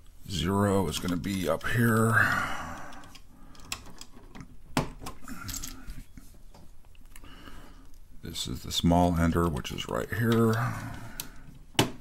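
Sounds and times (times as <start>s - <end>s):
key rattling: 5.4s - 5.9s.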